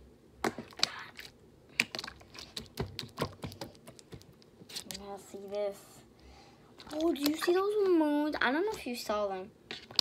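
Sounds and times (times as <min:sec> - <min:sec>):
slime clicking and popping: 0:01.7 - 0:04.3.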